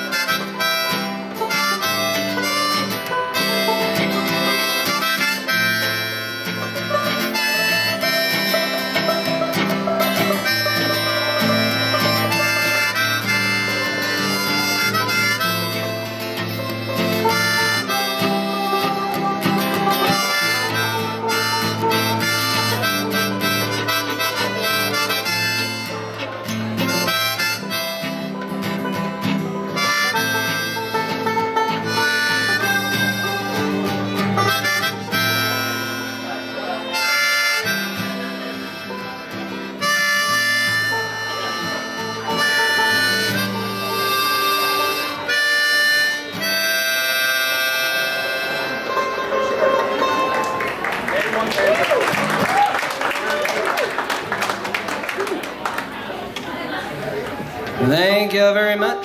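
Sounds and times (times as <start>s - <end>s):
bowed fiddle melody: 0.0s - 50.9s
strummed acoustic guitar: 0.0s - 51.1s, 56.7s - 59.0s
picked banjo: 0.0s - 59.0s.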